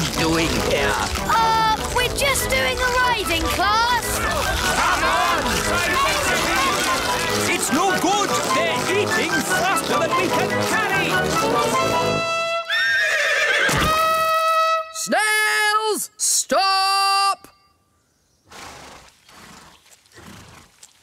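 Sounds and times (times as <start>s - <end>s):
hunting horn blowing: 11.6s - 13.0s, 13.8s - 15.2s.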